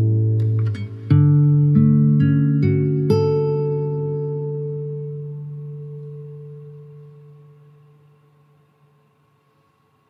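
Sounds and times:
acoustic guitar chord ringing: 0.0s - 9.8s.

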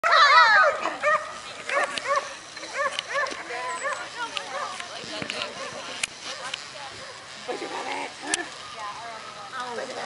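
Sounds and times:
dog yelping: 0.0s - 4.8s.

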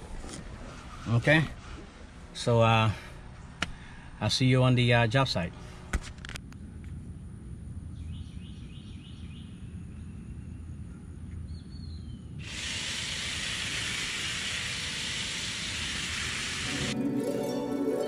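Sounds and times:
bird chirps: 7.9s - 12.4s
steady hiss: 12.4s - 17.0s.

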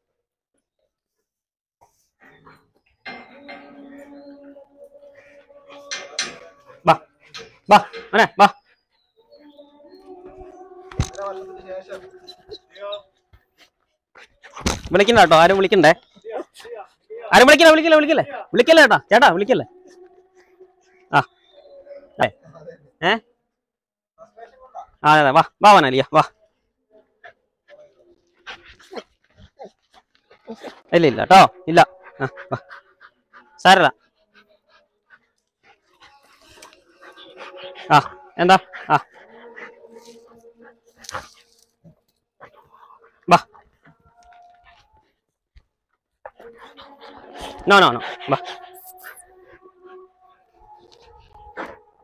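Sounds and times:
dog whining faintly: 2.2s - 14.7s, 27.2s - 45.2s, 46.3s - 52.0s
man's voice: 10.0s - 13.1s, 14.7s - 16.5s, 17.2s - 19.9s, 22.0s - 23.2s, 30.6s - 32.7s, 37.4s - 40.4s, 47.2s - 49.0s.

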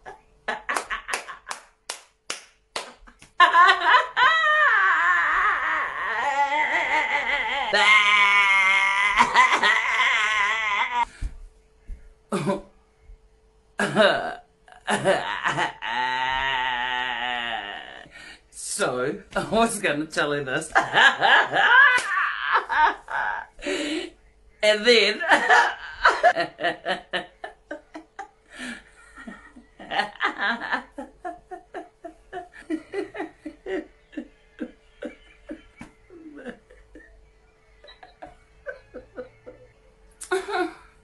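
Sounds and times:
woman laughing hard: 0.0s - 1.7s, 2.8s - 11.1s, 13.8s - 18.0s, 20.7s - 23.9s, 25.1s - 40.9s
person clapping hands: 0.7s - 3.4s, 22.0s - 22.2s.

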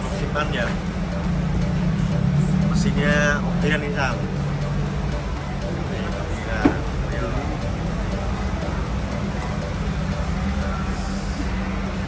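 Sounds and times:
distant music: 0.0s - 12.0s
people talking: 0.0s - 12.0s
steady low hum: 0.0s - 12.0s.

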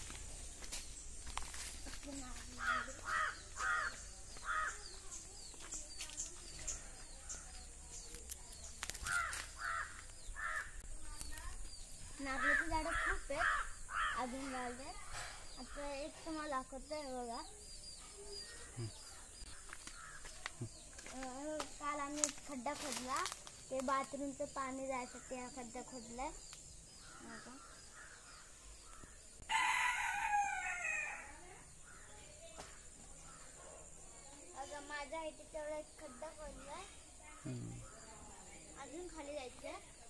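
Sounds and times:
bird calling: 2.2s - 5.1s, 9.0s - 10.8s
rooster crowing: 29.4s - 31.4s.

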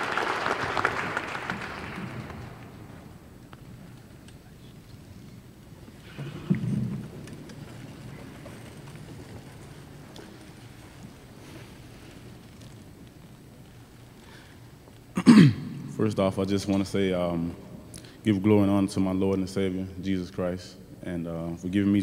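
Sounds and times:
man speaking: 15.9s - 22.0s.

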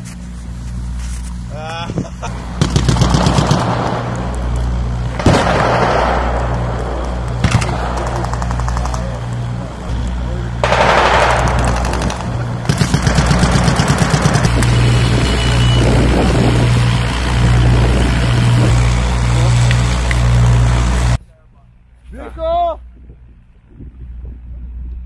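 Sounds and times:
low engine hum: 0.0s - 22.0s, 22.8s - 25.0s
loud rush of noise: 2.3s - 21.2s
rapid automatic gunfire: 2.6s - 4.1s, 5.2s - 6.7s, 7.4s - 9.2s, 10.6s - 14.6s.

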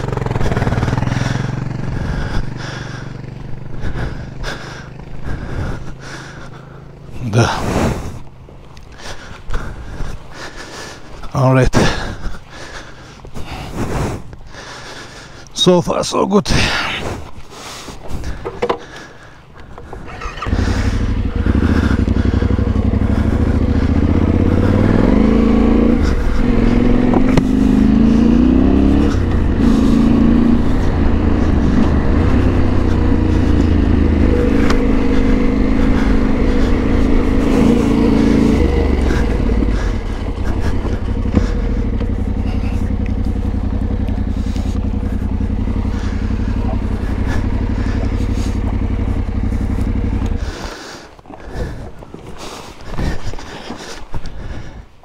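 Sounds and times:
motorcycle engine accelerating: 0.0s - 10.6s, 18.2s - 54.8s.

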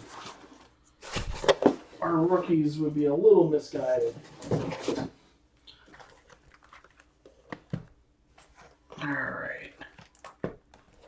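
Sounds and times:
card packs rustling: 0.0s - 2.7s, 3.8s - 8.9s.

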